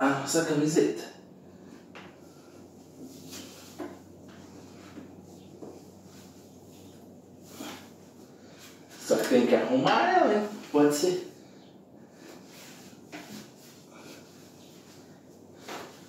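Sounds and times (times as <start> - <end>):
t-shirt rustling: 1.5 - 11.3, 12.1 - 16.0
soft knocks and shuffles: 1.6 - 11.0, 12.1 - 16.0.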